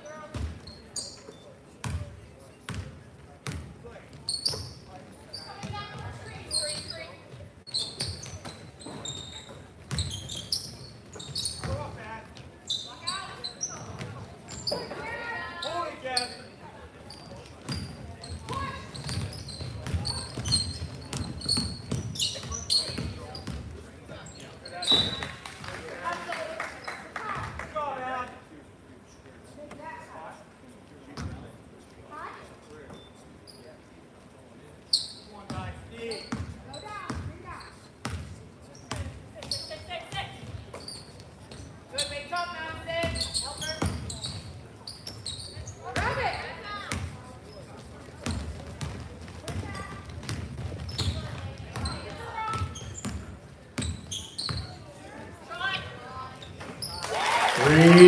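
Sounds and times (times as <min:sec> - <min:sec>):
basketball bouncing on wooden floor: 0:18.5 - 0:22.2.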